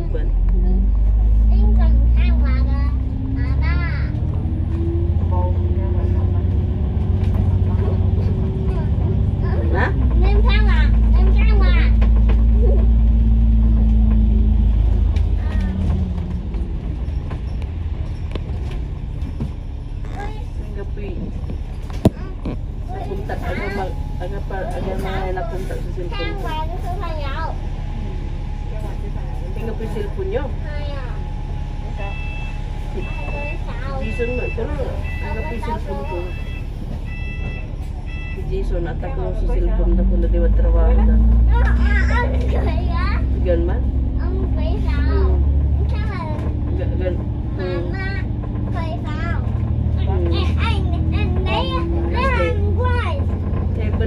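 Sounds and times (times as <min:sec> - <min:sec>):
bus diesel engine droning: 0:00.0 - 0:54.0.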